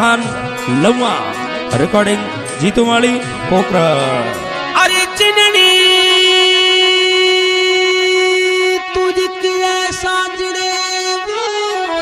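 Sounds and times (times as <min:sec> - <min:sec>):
instrument holding long steady note: 0:05.6 - 0:09.7.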